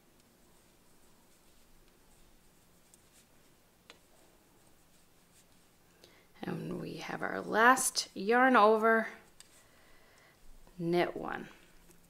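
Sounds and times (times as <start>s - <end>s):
woman speaking: 6.4s - 9.2s, 10.8s - 11.6s.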